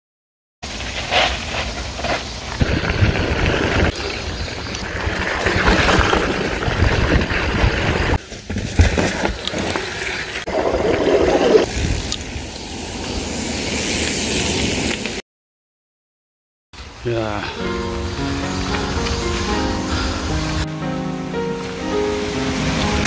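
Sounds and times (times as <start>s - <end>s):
bike tyres rolling over dirt: 0.6s - 15.2s
wind on microphone: 2.6s - 8.2s
bike rattling and knocking: 4.8s - 10.1s.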